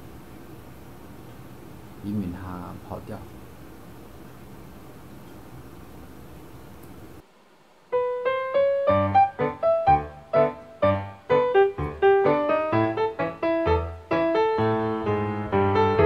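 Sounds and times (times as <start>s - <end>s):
piano music: 7.9s - 16.0s.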